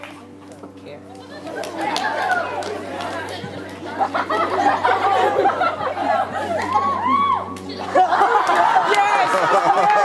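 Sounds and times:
children chattering: 0:00.3 - 0:10.0.

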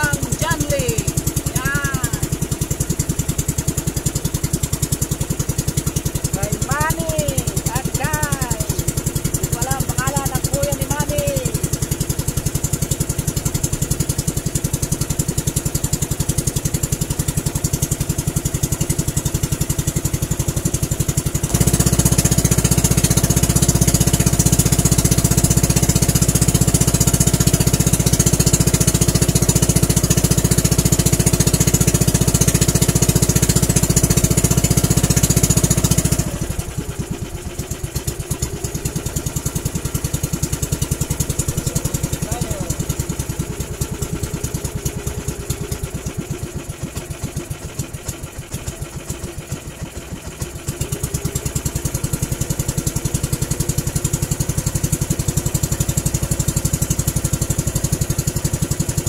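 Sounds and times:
boat engine running: 0:00.0 - 0:59.0.

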